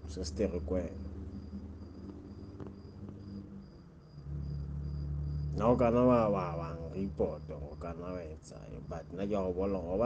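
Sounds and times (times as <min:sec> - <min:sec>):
cricket chirping: 0:00.0 - 0:10.0
low hum: 0:00.0 - 0:10.0.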